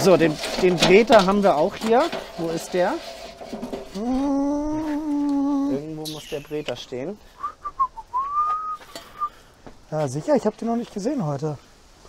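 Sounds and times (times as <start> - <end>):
person whistling: 7.4 - 9.4.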